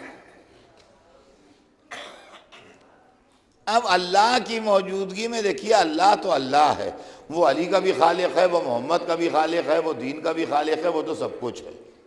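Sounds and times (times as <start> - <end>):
person coughing: 1.9 - 2.8.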